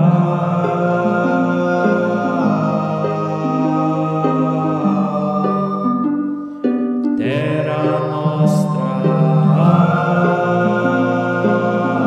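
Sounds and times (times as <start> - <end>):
chant-like singing voice: 0.0 - 12.0.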